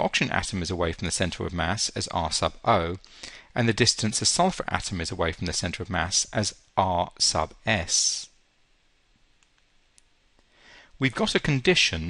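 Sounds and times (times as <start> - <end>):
soft intake of breath: 3.0 - 3.6, 10.4 - 11.0.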